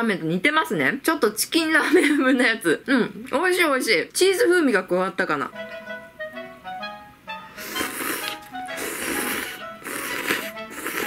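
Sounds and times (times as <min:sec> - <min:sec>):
light background music: 0:04.4 - 0:11.0
noodles being slurped: 0:07.6 - 0:11.0.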